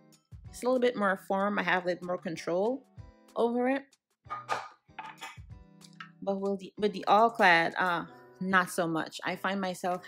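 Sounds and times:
frying pans clattering on countertop: 4.3s - 5.4s.

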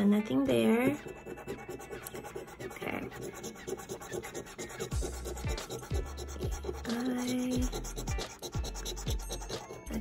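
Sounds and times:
coin scratching lottery ticket: 0.8s - 10.0s.

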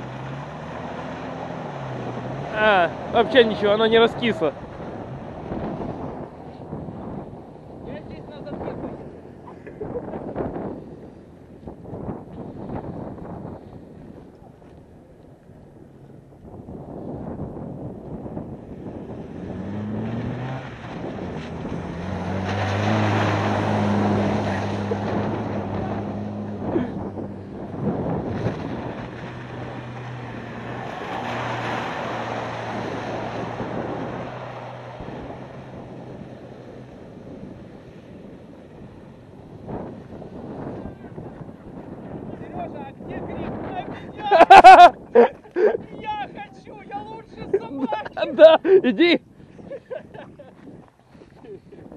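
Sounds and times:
car engine revving hard: 0.0s - 7.3s, 18.8s - 36.4s
wind buffeting microphone: 0.0s - 51.9s
wheels spinning in mud: 19.0s - 42.4s.

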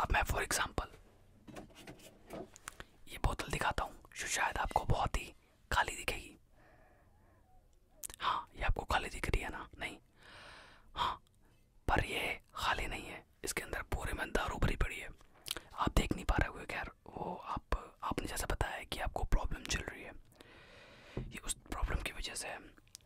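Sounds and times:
man whispering: 0.0s - 1.0s, 3.0s - 6.5s, 7.9s - 10.1s, 10.9s - 20.3s, 21.3s - 22.8s
soft mouth clicks: 7.7s - 8.3s, 15.2s - 15.8s, 22.7s - 23.0s.

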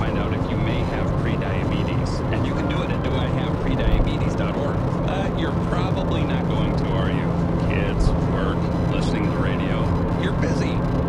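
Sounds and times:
car road and engine hum: 0.0s - 11.0s
voice talking on car radio: 0.0s - 11.0s.

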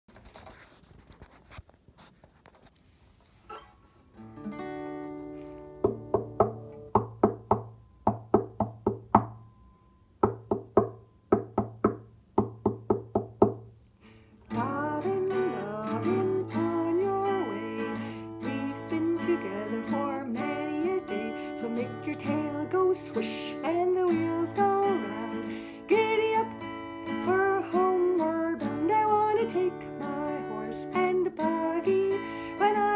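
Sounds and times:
acoustic guitar strumming: 3.5s - 13.1s, 14.4s - 32.9s
woman singing: 14.5s - 32.9s.

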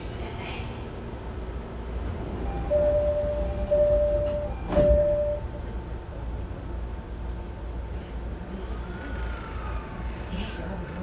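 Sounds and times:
train doors shutting with a knock: 2.3s - 5.8s
door-closing chime tone: 2.7s - 5.6s.

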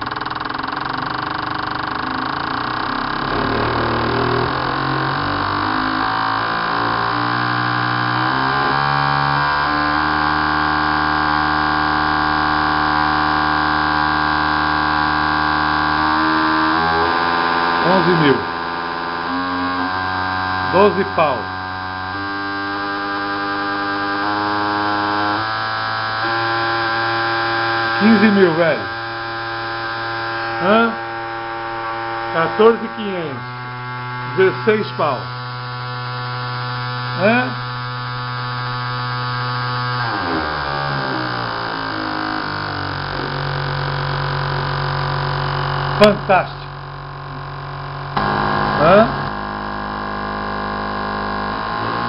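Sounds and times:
fuel injectors buzzing: 0.0s - 52.0s.

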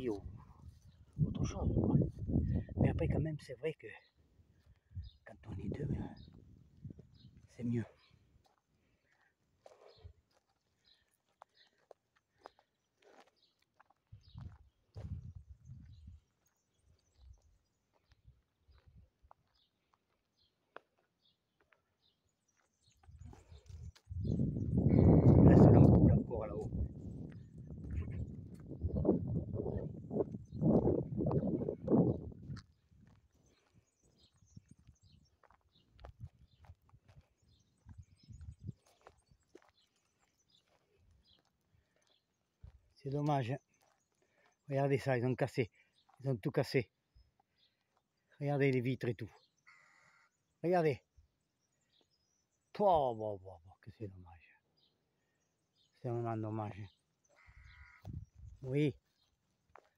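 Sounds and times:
footsteps on gravel and grass: 5.8s - 21.7s, 22.5s - 24.6s, 25.8s - 43.0s, 43.6s - 44.7s, 59.0s - 59.9s.

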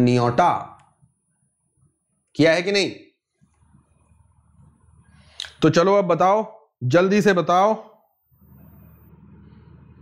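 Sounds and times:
low room noise hum: 8.3s - 10.0s.

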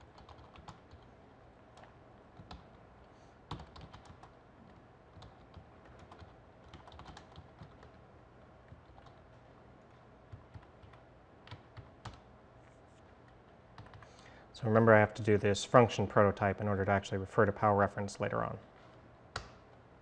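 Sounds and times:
computer keyboard typing: 0.0s - 1.1s, 1.8s - 2.8s, 3.5s - 8.0s, 8.7s - 9.3s, 10.3s - 12.2s, 13.3s - 14.2s.

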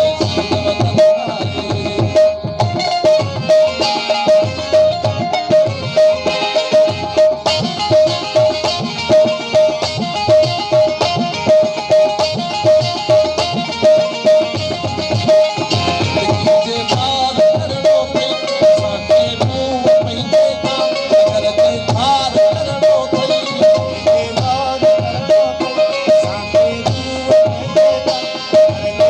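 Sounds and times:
hand drum rhythm: 0.0s - 29.0s
harmonium: 0.0s - 29.0s.

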